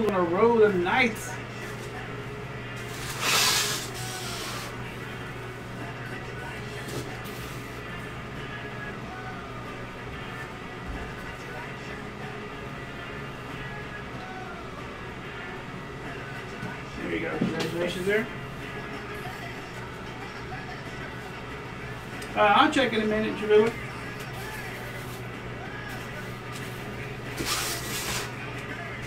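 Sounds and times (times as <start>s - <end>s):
quiet background music: 0.0s - 29.0s.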